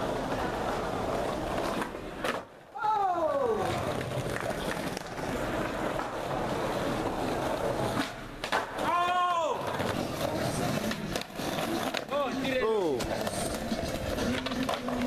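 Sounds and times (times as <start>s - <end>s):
skateboard wheels rolling on concrete: 0.0s - 15.0s
skateboard clicks: 3.4s - 9.0s, 9.7s - 15.0s.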